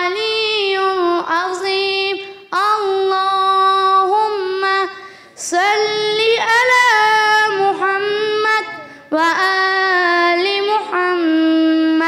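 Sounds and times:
girl chanting recitation: 0.0 - 12.0.

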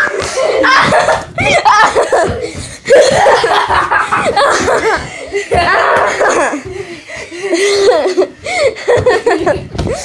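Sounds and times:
children laughing and calling out: 0.0 - 10.0.

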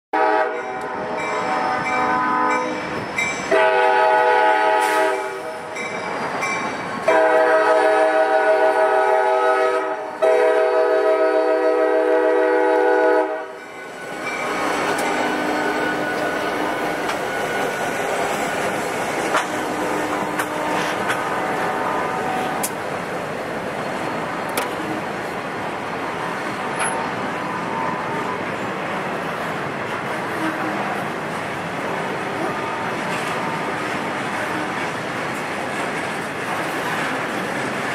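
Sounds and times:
locomotive air horn blasts: 0.2 - 5.7, 7.0 - 13.6, 19.7 - 22.7, 30.3 - 30.9
train rumbling by: 0.2 - 37.9.

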